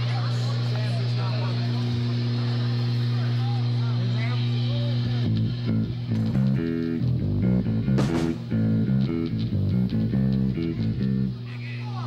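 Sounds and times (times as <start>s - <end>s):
crowd talking and calling out: 0.0s - 7.0s
stage amplifier hum: 0.0s - 12.0s.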